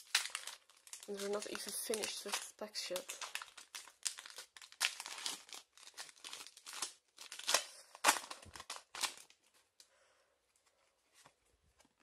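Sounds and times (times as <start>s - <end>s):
foil wrapper tearing and crinkling: 0.0s - 9.5s.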